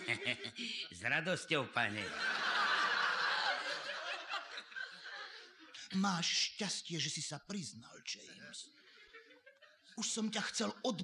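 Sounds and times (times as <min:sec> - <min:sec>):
audience laughing: 0:00.0 - 0:01.0, 0:01.9 - 0:05.8.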